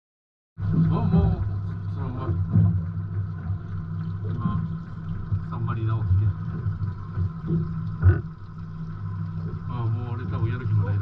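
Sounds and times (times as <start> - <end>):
boat engine low drone: 0.6 - 11.0.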